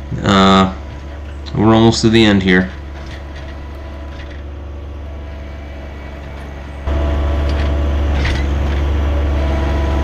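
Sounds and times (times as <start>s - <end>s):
tractor diesel engine running: 0.0s - 10.0s.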